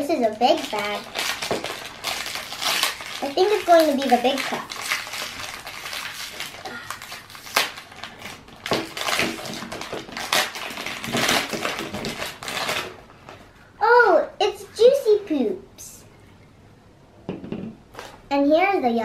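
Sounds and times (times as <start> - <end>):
child's voice: 0.0 - 1.1, 3.2 - 4.7, 13.8 - 16.1, 18.3 - 19.0
foil packet crinkling and tearing: 0.0 - 13.5.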